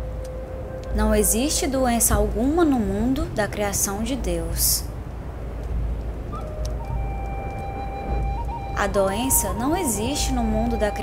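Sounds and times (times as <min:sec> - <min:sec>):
crackling fire: 0:00.0 - 0:11.0
ocean surf: 0:00.0 - 0:11.0
soft held music tone: 0:00.0 - 0:11.0
volcano eruption rumble: 0:00.0 - 0:11.0.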